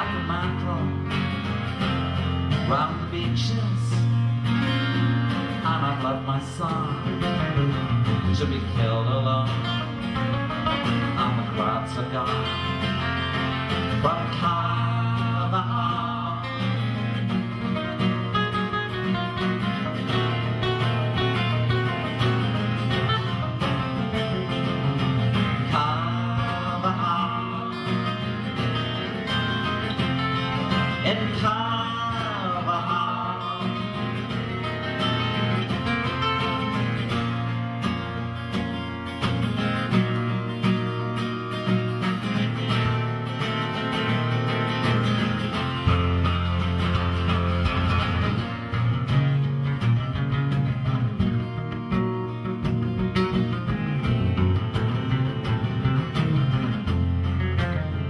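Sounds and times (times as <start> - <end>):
acoustic guitars playing: 0.0 - 58.0.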